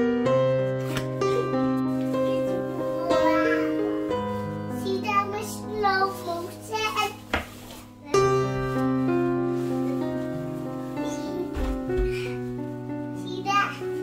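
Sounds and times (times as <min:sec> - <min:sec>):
instrumental keyboard music: 0:00.0 - 0:07.2, 0:07.8 - 0:14.0.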